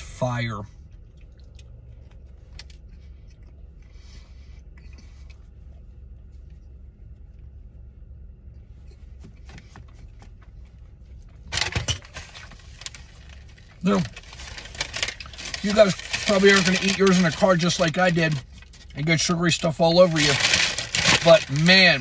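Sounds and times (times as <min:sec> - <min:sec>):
man licking fingers and chewing: 0:00.8 - 0:07.5.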